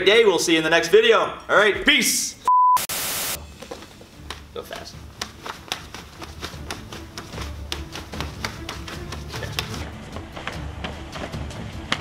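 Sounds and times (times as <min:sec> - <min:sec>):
burst of hiss: 0:02.9 - 0:03.4
hands slapping arms: 0:04.2 - 0:09.9.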